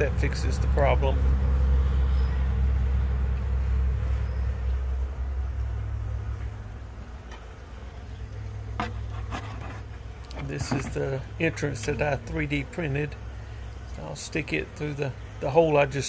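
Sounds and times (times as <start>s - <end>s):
honeybees buzzing: 0.0s - 16.0s.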